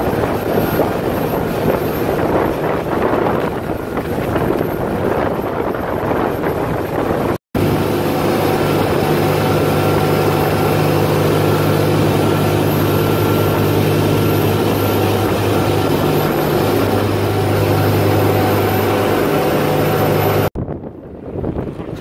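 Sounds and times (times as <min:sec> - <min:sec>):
water rushing in wake: 0:00.0 - 0:20.5
boat engine drone: 0:00.0 - 0:22.0.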